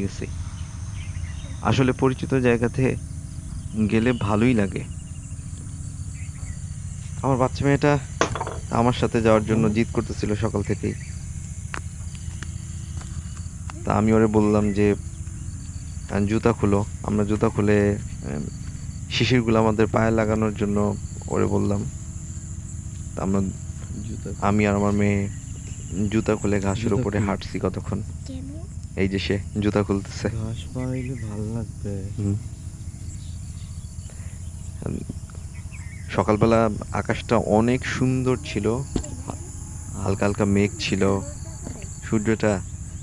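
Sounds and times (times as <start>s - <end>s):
man talking: 0.0s - 0.3s, 1.6s - 3.0s, 3.7s - 4.9s, 7.2s - 11.0s, 13.9s - 15.0s, 16.1s - 21.9s, 23.2s - 28.0s, 29.0s - 32.4s, 34.8s - 35.2s, 36.1s - 39.0s, 40.0s - 41.3s, 42.0s - 42.6s
crickets chirring: 0.0s - 43.0s.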